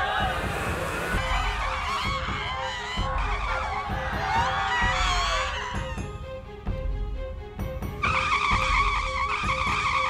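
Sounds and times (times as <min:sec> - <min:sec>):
dramatic score with ticking pulse: 0:00.0 - 0:10.0
passengers screaming in panic: 0:01.8 - 0:05.9.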